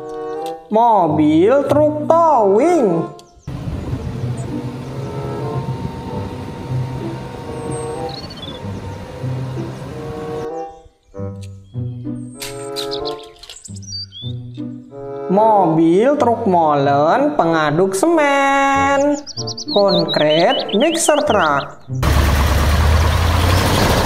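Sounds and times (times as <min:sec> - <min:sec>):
background music: 0:00.0 - 0:22.0
steady outdoor noise: 0:03.1 - 0:10.7
faint bird chirps: 0:10.5 - 0:14.5, 0:19.2 - 0:21.8.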